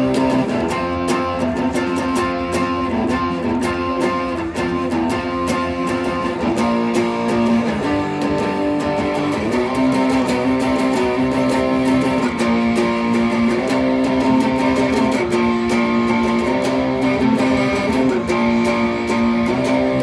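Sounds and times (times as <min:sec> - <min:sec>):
overdriven electric guitar strumming: 0:00.0 - 0:20.0.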